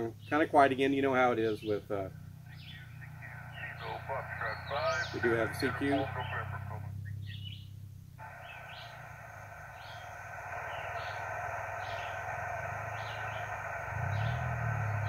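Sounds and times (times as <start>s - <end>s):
bird chirping: 0.0s - 15.0s
radio static hiss: 2.4s - 7.3s, 8.2s - 15.0s.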